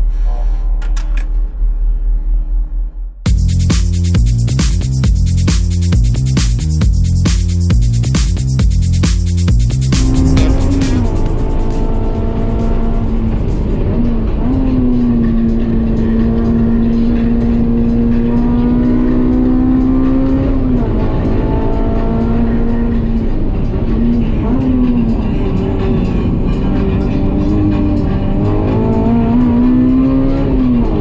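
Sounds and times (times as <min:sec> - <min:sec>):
car engine at high revs: 0:09.8 - 0:31.0.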